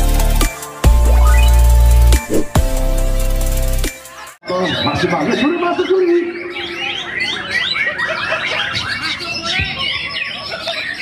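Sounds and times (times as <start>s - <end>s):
birds singing together: 4.4s - 11.0s.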